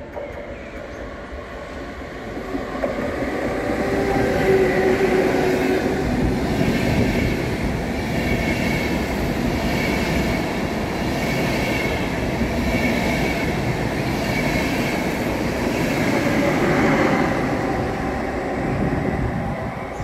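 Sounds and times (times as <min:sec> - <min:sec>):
electric locomotive humming: 0:00.0 - 0:20.0.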